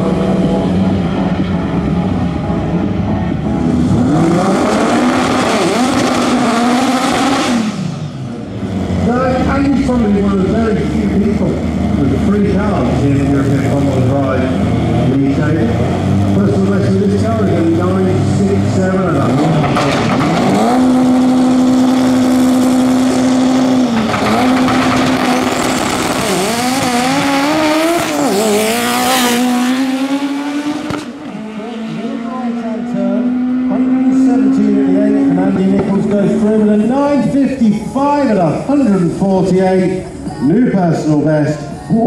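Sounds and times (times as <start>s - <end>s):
drag racing car engines revving: 0.0s - 42.0s.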